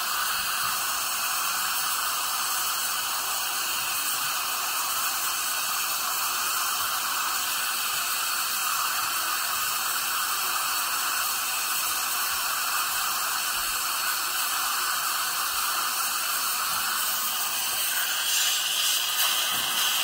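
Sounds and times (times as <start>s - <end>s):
dental drill: 0.0s - 20.0s
dental suction: 0.0s - 20.0s.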